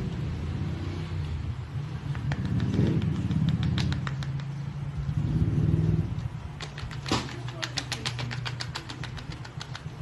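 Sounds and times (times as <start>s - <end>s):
paintbrush tapping on paper: 2.1s - 4.6s, 6.6s - 10.0s.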